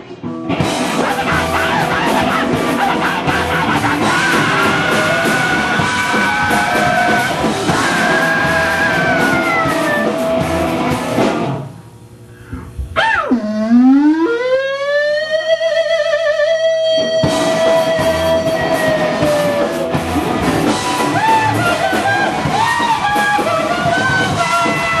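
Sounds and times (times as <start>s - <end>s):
loud rock band: 0.1s - 11.9s, 16.4s - 25.0s
electric guitar note swooping: 0.5s - 24.1s.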